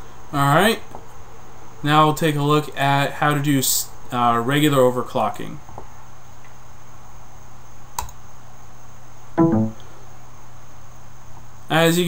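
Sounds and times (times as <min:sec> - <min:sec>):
computer hum: 0:06.8 - 0:10.3.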